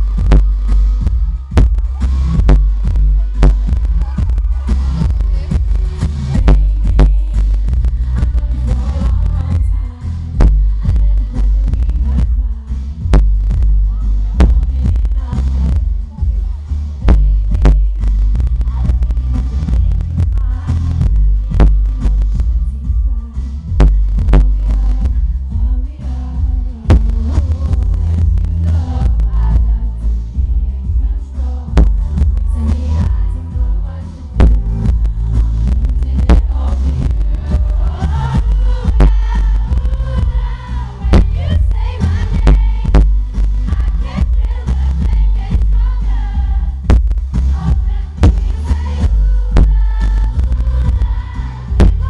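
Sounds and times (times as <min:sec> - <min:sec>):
heavy booming bass beat: 0:00.0 - 0:52.0
live pop song through loudspeakers: 0:00.0 - 0:52.0
kick drum thumping: 0:00.2 - 0:01.8, 0:02.4 - 0:04.5, 0:38.4 - 0:40.4, 0:41.1 - 0:41.8, 0:42.4 - 0:44.5, 0:46.8 - 0:49.8, 0:51.8 - 0:52.0.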